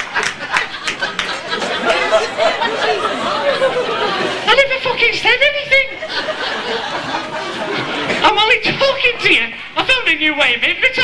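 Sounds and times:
overlapping speech and chatter: 0.0 - 11.0.

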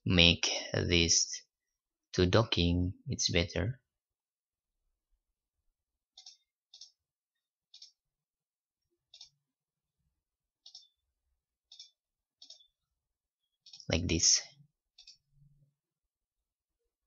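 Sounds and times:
computer mouse clicking: 6.1 - 7.0, 7.7 - 8.0, 9.1 - 9.4, 10.6 - 11.0, 11.7 - 12.7, 13.6 - 13.9, 14.9 - 15.3
man's voice: 13.9 - 14.5.

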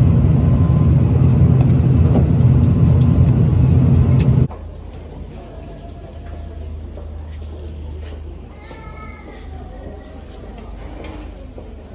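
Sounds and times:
steady low hum: 0.0 - 4.5.

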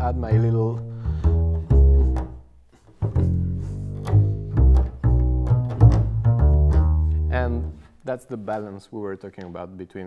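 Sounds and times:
double bass plucked: 0.0 - 8.0.

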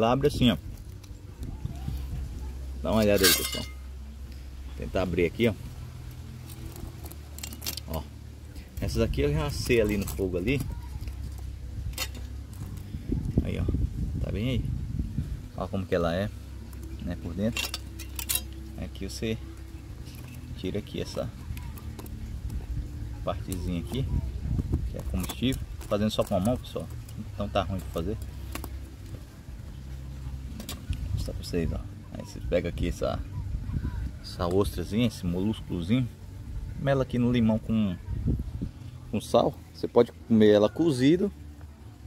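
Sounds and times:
steady low background noise: 0.0 - 42.0
steady low rumble: 0.0 - 42.0.

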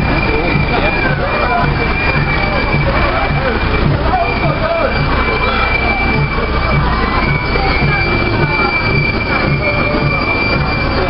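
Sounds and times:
high-pitched squeal: 0.0 - 11.0
lorry engine running: 0.0 - 11.0.

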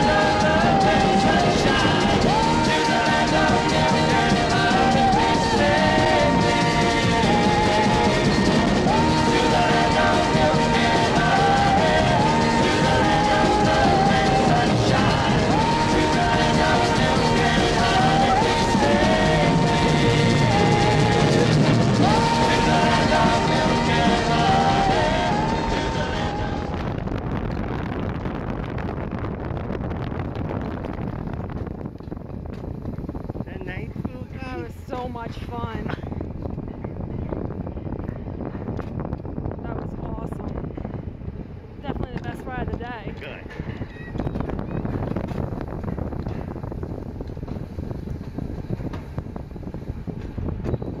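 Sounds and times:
voices: 0.0 - 26.8, 33.5 - 36.0, 41.8 - 43.5
background music: 0.0 - 27.0
coaster sled rattling on steel rails: 0.0 - 27.2
wind rushing over microphone: 0.0 - 51.0.

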